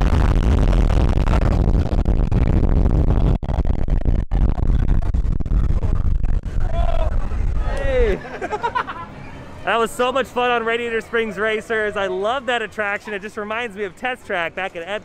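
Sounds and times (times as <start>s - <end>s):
wind buffeting microphone: 0.0s - 8.2s.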